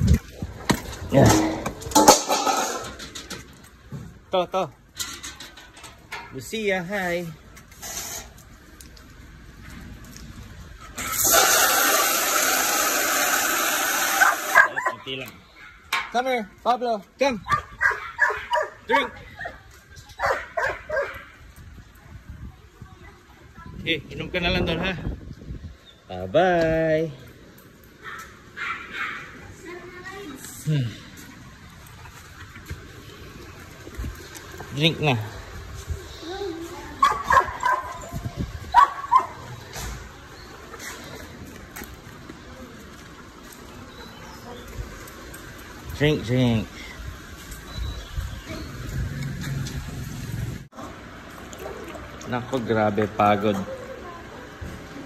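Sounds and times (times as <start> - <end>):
dog barking: 14.2 - 15.9, 17.5 - 19.6, 20.2 - 21.4, 28.0 - 29.4, 37.0 - 38.1, 38.7 - 39.5.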